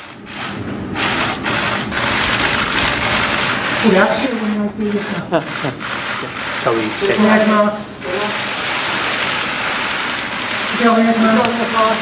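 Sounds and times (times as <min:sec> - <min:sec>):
camera shutters clicking: 0:05.1 - 0:07.0.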